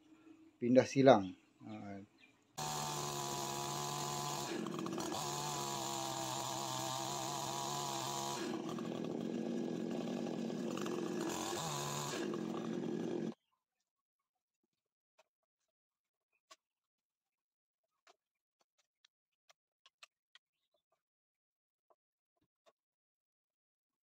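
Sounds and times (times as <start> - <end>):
chainsaw cutting log: 2.6 - 13.4.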